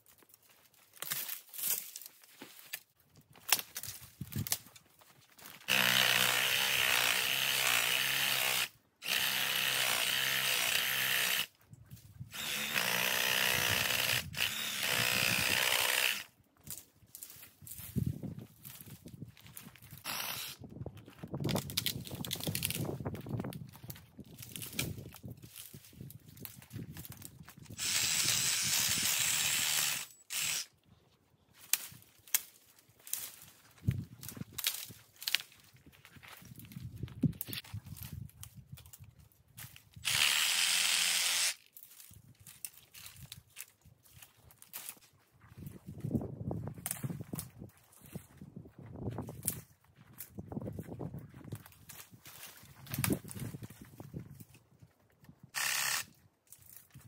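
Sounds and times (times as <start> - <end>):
reciprocating saw cutting wood: 5.7 - 11.5, 12.3 - 16.3, 20.0 - 20.6, 27.8 - 30.7, 40.0 - 41.6, 55.6 - 56.1
wood cracking: 21.4 - 22.9.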